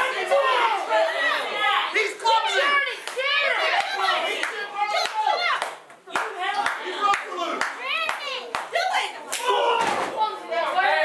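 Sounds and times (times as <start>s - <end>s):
spectators shouting: 0.0s - 5.8s, 6.4s - 11.0s.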